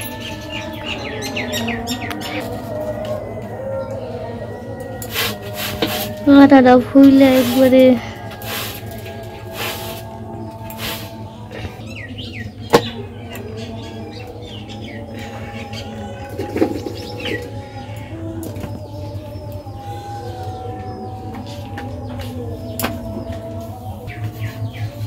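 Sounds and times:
birds chirping: 0.0s - 25.0s
low steady hum: 0.0s - 25.0s.

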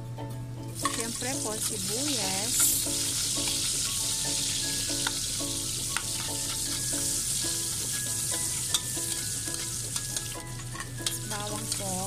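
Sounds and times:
onion sizzling in hot oil: 0.8s - 12.0s.

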